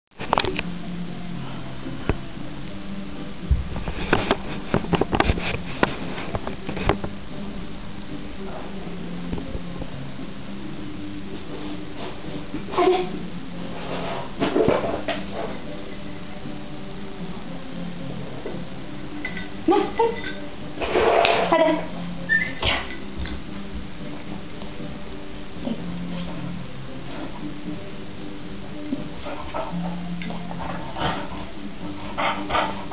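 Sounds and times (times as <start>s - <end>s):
noisy rustle: 0.1s - 18.8s, 20.6s - 32.9s
dog whimpering: 22.3s - 22.9s.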